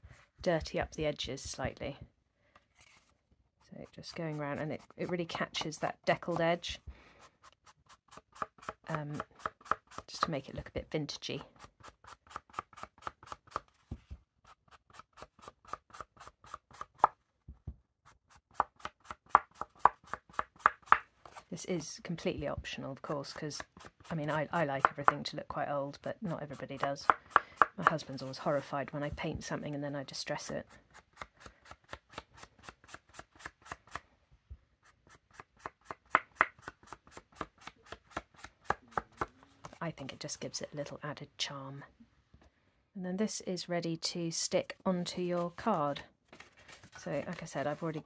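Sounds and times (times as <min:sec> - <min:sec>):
sponge pad tapping on paper: 0:20.6 - 0:21.1.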